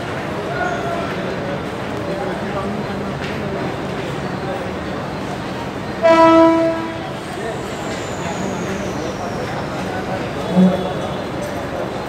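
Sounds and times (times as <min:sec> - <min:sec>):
train horn blast: 0:06.0 - 0:07.3, 0:10.4 - 0:11.3.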